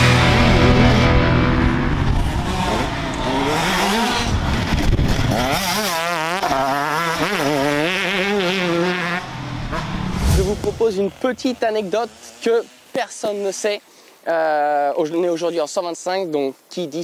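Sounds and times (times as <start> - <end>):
motocross bike engine revving: 0.0 - 13.7.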